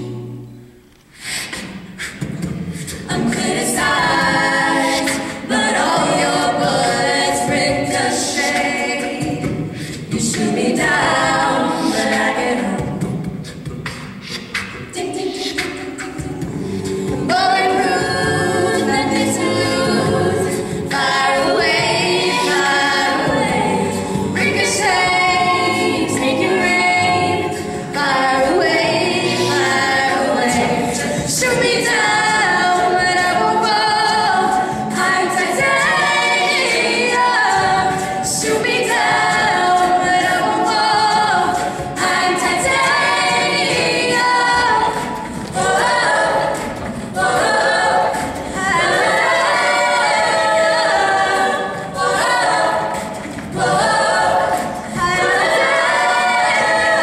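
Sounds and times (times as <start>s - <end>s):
mixed a cappella group singing: 0.0s - 57.0s.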